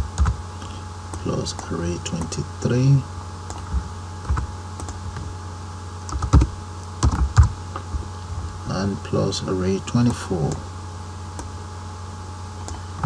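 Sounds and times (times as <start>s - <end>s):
steady low hum: 0.0s - 13.0s
computer keyboard keystrokes: 0.2s - 0.4s, 3.5s - 5.0s, 6.1s - 7.5s.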